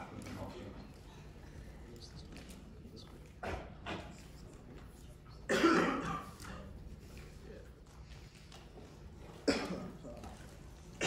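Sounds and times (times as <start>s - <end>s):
person coughing: 5.4s - 6.5s, 9.4s - 10.1s.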